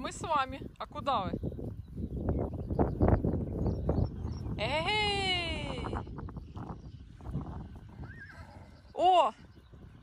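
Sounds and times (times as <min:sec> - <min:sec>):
horse whinnying: 0:08.0 - 0:08.8.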